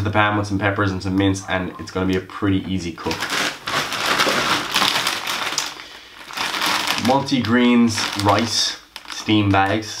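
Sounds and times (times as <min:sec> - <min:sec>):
plastic bags crinkling: 0:03.0 - 0:10.0.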